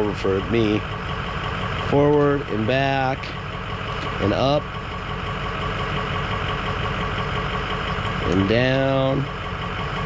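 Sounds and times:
diesel engine idling: 0.0s - 10.0s.

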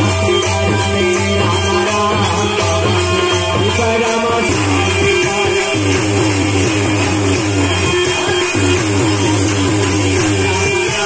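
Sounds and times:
folk music over loudspeaker: 0.0s - 11.0s.

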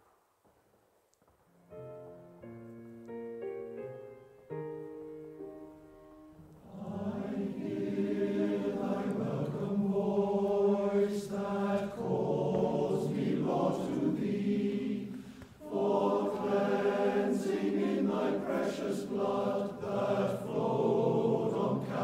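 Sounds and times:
keyboard: 1.6s - 22.0s
congregation singing a hymn: 6.6s - 22.0s.

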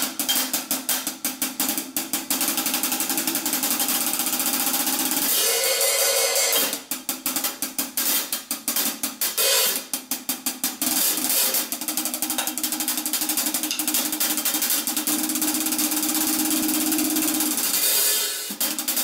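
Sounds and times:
hi-hat and cymbal hits: 0.0s - 19.0s
snare drum strokes: 0.0s - 19.0s.

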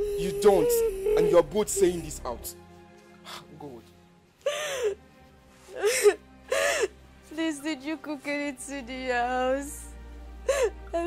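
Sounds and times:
woman whimpering: 0.0s - 1.6s.

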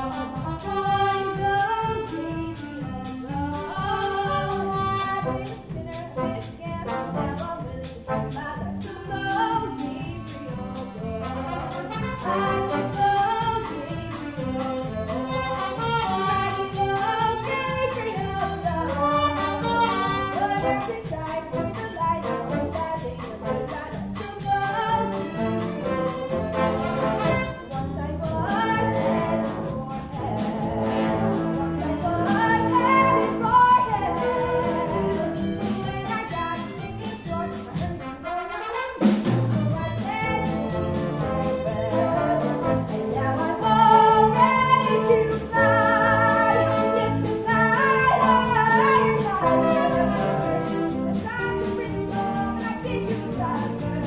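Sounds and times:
orchestra playing jazzy show music: 0.0s - 54.0s.

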